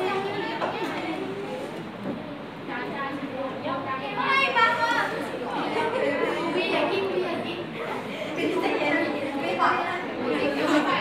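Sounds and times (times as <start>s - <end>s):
people chattering in reverberant room: 0.0s - 11.0s.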